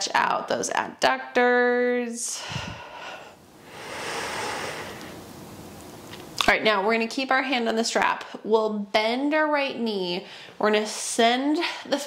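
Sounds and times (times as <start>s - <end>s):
faint steady hiss: 0.0s - 12.0s
breathy exhale: 2.4s - 5.2s.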